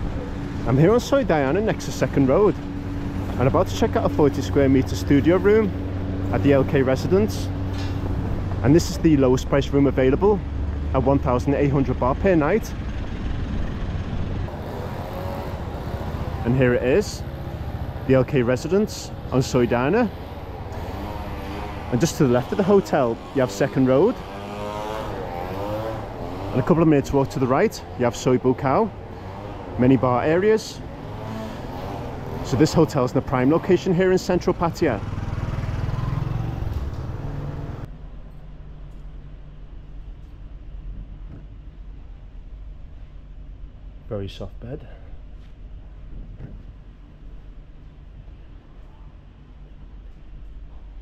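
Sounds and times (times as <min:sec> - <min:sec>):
car engine running: 0:00.0 - 0:35.8
motor scooter engine hum: 0:00.0 - 0:37.9.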